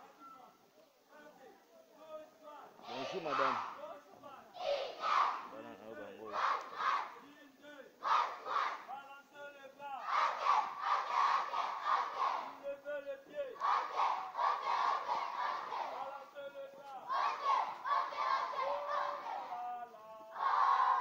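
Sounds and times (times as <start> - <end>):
children chanting in rhythmic bursts: 2.8 - 5.6, 6.2 - 7.3, 8.0 - 9.0, 10.0 - 12.7, 13.3 - 21.0.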